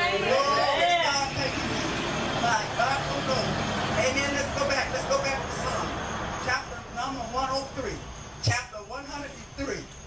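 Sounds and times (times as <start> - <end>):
steady noise: 0.0 - 10.0.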